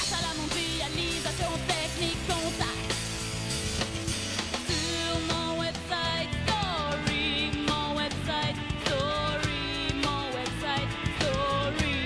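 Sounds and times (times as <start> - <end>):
woman singing: 0.0 - 3.0, 4.7 - 12.0
drumbeat: 0.0 - 12.0
electric guitars: 0.0 - 12.0.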